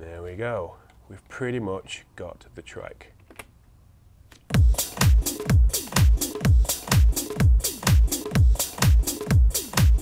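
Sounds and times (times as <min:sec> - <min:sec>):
electronic dance track: 0:04.5 - 0:10.0
heavy kick drum: 0:04.5 - 0:10.0.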